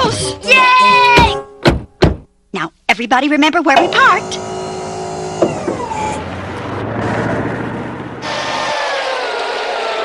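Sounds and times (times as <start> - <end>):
grinding winch motor: 3.8 - 6.4, 8.2 - 10.0
vehicle running: 3.8 - 10.0.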